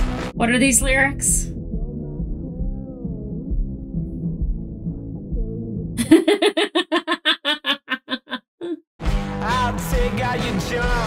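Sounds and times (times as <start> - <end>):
woman laughing hard: 6.0 - 8.8.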